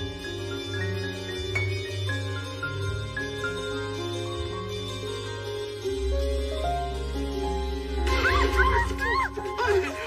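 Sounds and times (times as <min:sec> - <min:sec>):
soft sustained film music: 0:00.0 - 0:10.0.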